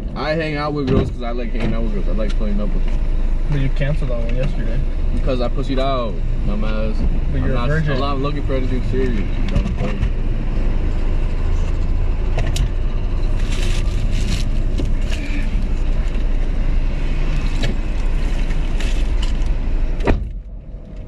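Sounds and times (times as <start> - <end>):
street traffic rumble: 0.0 - 21.0
rustling: 13.2 - 16.3.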